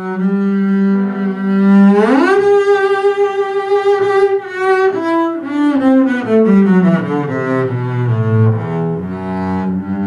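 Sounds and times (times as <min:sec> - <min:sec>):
bowed double bass: 0:00.0 - 0:10.0.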